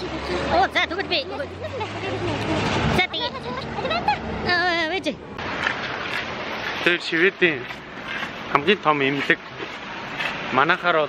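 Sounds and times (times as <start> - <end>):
street traffic noise: 0.0 - 11.0
man talking: 6.8 - 7.8, 8.5 - 9.6, 10.5 - 11.0.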